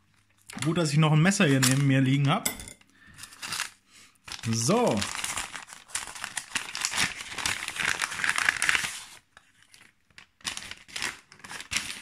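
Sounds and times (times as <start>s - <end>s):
paper cards crackling: 3.4s - 12.0s.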